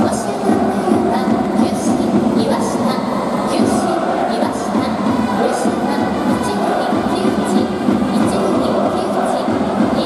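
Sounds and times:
reverberant stadium crowd din: 0.0 - 10.0.

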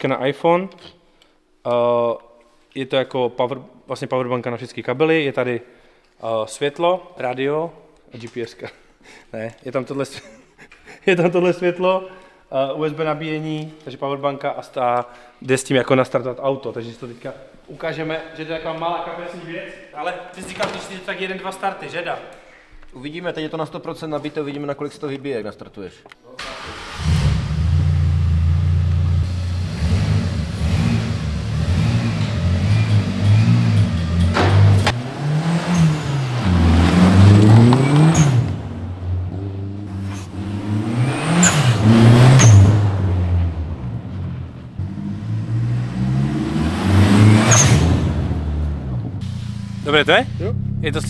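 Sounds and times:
car engine starting: 26.4 - 51.0
car engine revving: 26.5 - 51.0.

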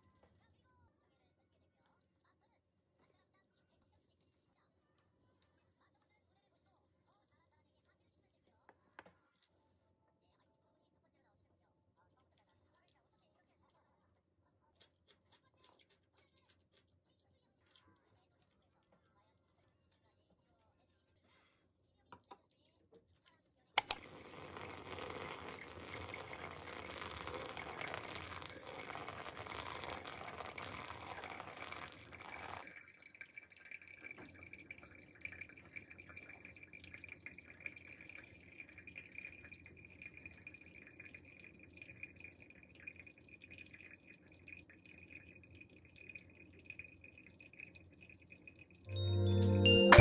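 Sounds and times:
coffee dripping: 23.8 - 48.8
water pouring onto coffee grounds: 23.8 - 48.8
faint steady high tone: 48.9 - 50.0.

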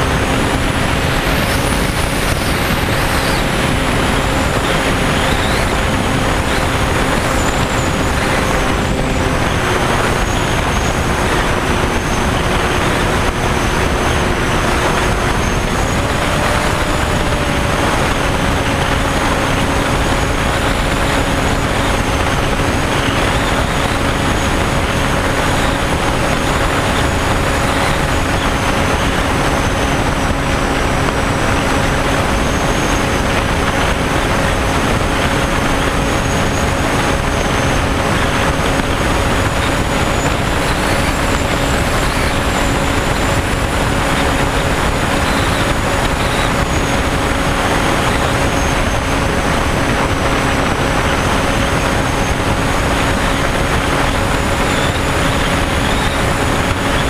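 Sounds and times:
model airplane motor whining: 0.0 - 57.0
wind rush: 0.0 - 57.0.

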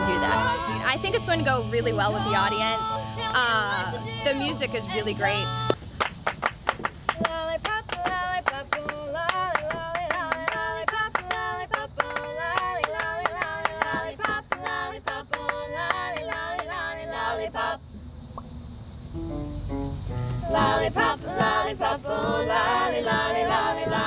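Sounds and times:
women singing in close harmony: 0.0 - 5.8, 7.2 - 17.8, 20.4 - 24.0
rhythmic handclaps: 5.6 - 17.1, 20.6 - 24.0.

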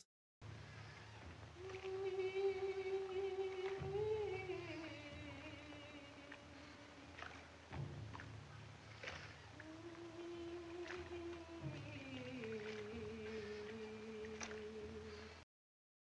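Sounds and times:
steady hum and hiss: 0.5 - 15.4
woman singing long notes: 1.6 - 7.5, 9.6 - 15.3.

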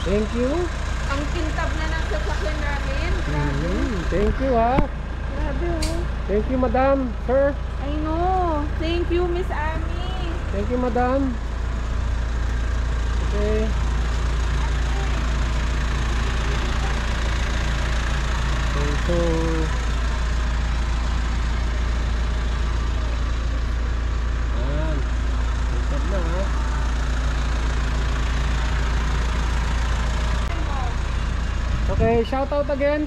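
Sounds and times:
steady low rumble: 0.0 - 33.0.

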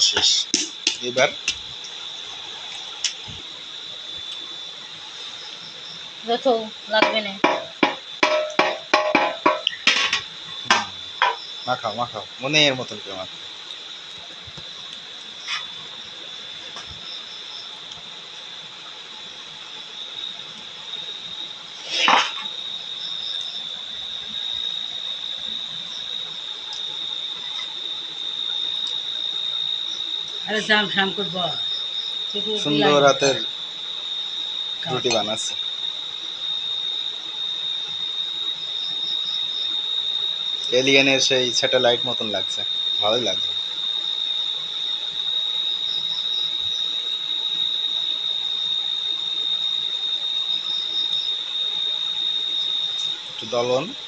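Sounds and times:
high-pitched insect trill: 0.0 - 54.0
faint hiss: 9.6 - 23.6.

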